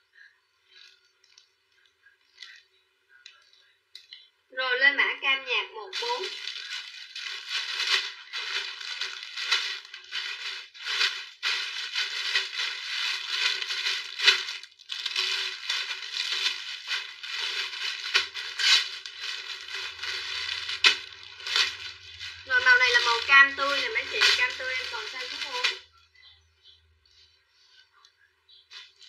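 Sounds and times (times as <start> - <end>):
plastic bags crinkling: 0.7 - 4.2, 5.9 - 26.3, 27.0 - 29.0.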